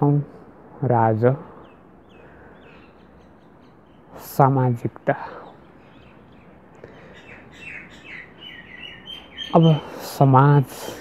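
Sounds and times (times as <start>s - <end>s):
bird chirping: 1.0s - 11.0s.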